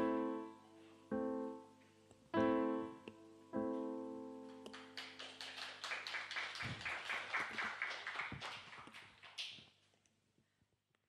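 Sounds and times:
people applauding: 0:04.7 - 0:09.6.

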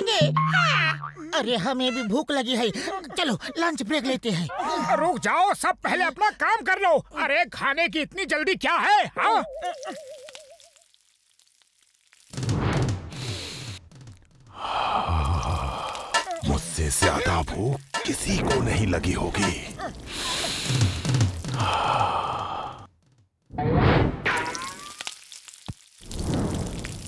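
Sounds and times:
campfire crackling and sizzling: 0:09.7 - 0:22.6, 0:24.3 - 0:27.0
breathy snake sigh: 0:14.5 - 0:16.2, 0:20.0 - 0:22.9.

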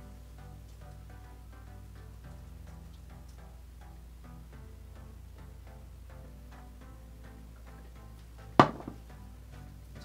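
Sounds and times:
plucked-string background music: 0:00.0 - 0:10.0.

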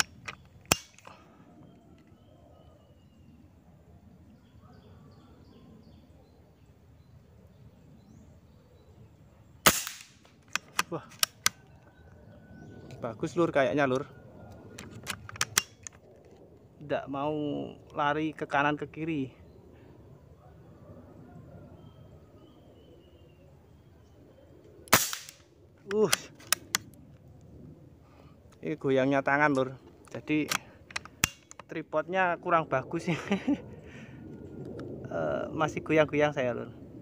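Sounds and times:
rifle bolt clicks: 0:00.0 - 0:01.1, 0:09.7 - 0:11.6, 0:14.8 - 0:16.0, 0:30.4 - 0:31.8
air rifle shot: 0:09.6 - 0:10.8, 0:24.9 - 0:25.4
person speaking: 0:25.8 - 0:26.4.

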